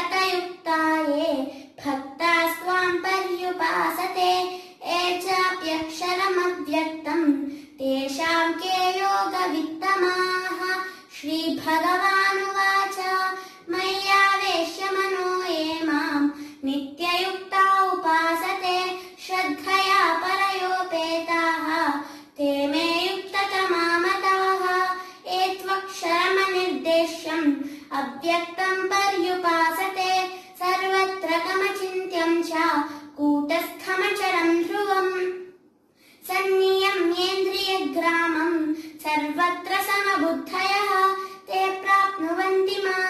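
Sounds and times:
girl singing unaccompanied: 0.0 - 35.6, 36.2 - 43.0
girl breathing: 1.4 - 1.8, 4.4 - 4.8, 7.4 - 7.8, 10.8 - 11.1, 13.3 - 13.7, 16.3 - 16.6, 18.9 - 19.2, 22.0 - 22.4, 24.9 - 25.3, 27.6 - 27.9, 30.3 - 30.6, 32.8 - 33.2, 35.8 - 36.3, 38.7 - 39.0, 41.1 - 41.5.

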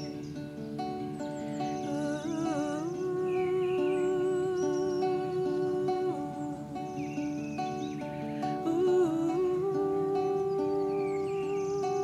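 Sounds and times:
acoustic guitar: 0.0 - 12.0
woman humming: 1.9 - 7.2, 8.6 - 12.0.

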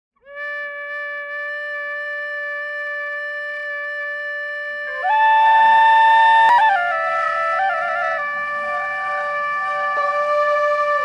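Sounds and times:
held note on wind instrument: 0.2 - 11.0.

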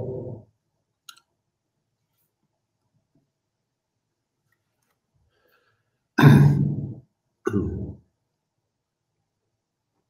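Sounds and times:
man coughing: 6.2 - 6.8, 7.5 - 8.0.

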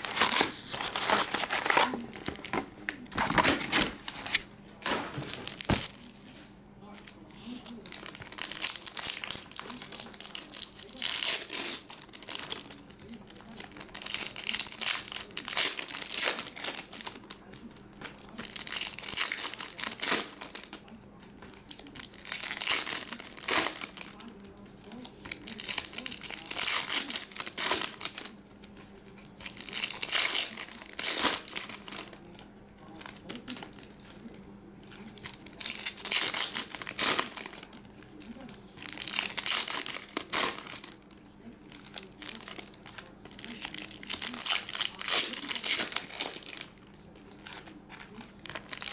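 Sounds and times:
foil packs tearing and crinkling: 0.0 - 6.2, 7.8 - 17.4, 18.0 - 20.8, 21.6 - 24.3, 24.9 - 28.3, 29.4 - 32.3, 35.1 - 41.1, 41.7 - 48.9.

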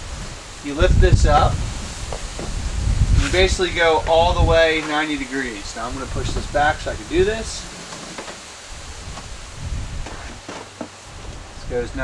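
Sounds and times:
handling rustle: 2.1 - 11.6.

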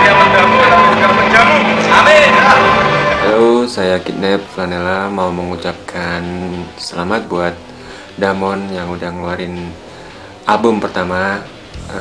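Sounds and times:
background music with held notes: 0.0 - 12.0
men speaking: 0.0 - 12.0.

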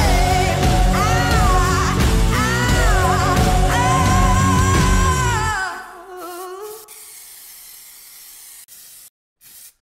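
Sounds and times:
high-pitched hiss: 6.8 - 9.1.

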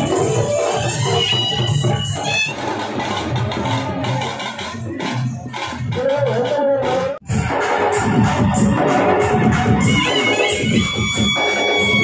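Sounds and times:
loud music with steady beat: 0.0 - 12.0
high melody line: 7.3 - 12.0.

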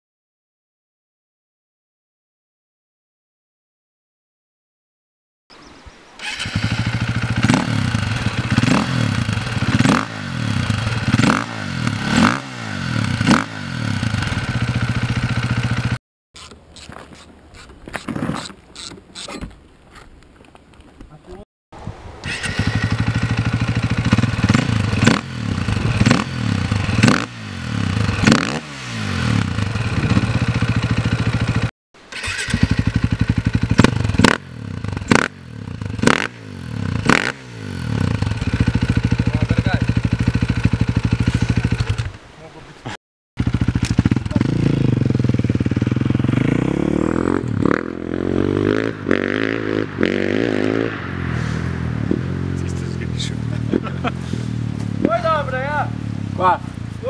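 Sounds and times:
motorcycle engine revving and idling: 6.2 - 16.0, 22.2 - 42.2, 43.4 - 57.0.

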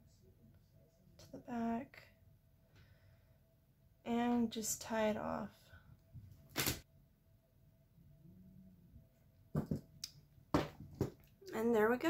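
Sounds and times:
tool set down on wooden table: 9.5 - 9.9, 10.5 - 11.2.

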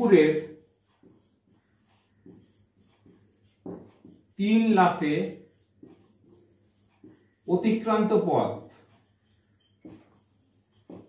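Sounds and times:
man speaking: 0.0 - 0.5, 4.4 - 5.4, 7.5 - 8.7
marker pen writing on whiteboard: 0.0 - 11.0.

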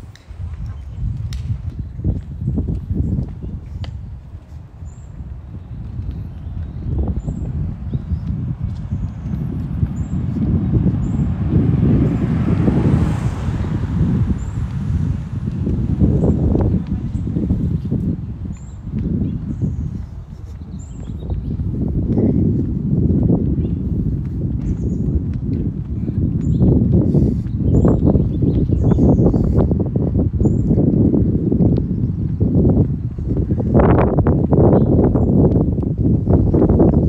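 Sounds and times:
wind buffeting microphone: 0.0 - 37.0
vehicle passing: 10.4 - 16.6.

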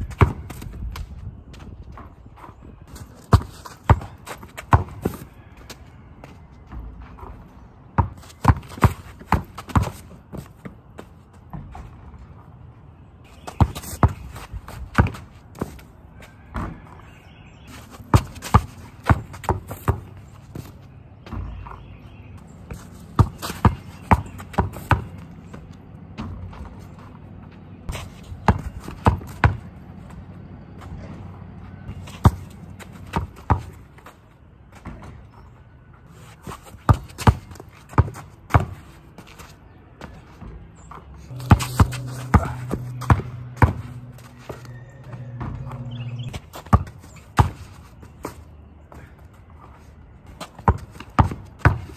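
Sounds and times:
basketball bouncing on dirt: 0.0 - 12.5, 13.3 - 35.6, 36.4 - 39.4, 40.0 - 49.1, 50.2 - 51.9.

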